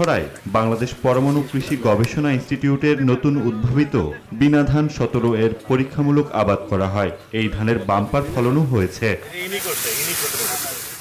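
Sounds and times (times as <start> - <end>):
faint voices: 0.0 - 11.0
steady high hiss: 7.9 - 11.0.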